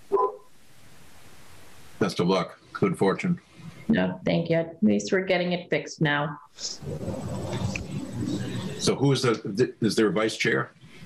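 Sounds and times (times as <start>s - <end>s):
low hiss: 0.0s - 5.8s, 6.4s - 11.0s.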